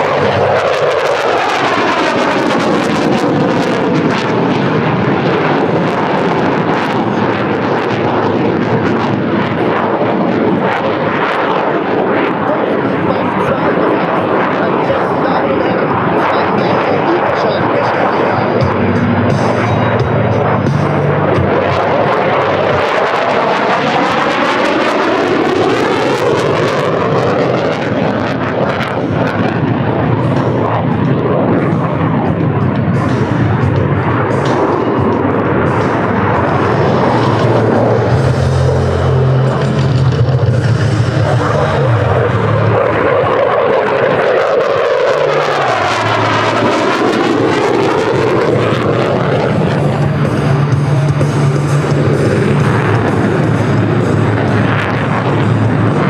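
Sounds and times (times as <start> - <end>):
jet engine roar: 0.0 - 56.0
jet passing whooshes: 15.9 - 56.0.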